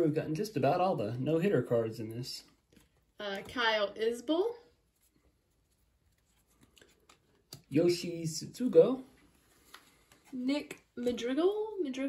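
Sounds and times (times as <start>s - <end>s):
trading cards being handled: 2.4s - 3.7s, 4.8s - 11.3s.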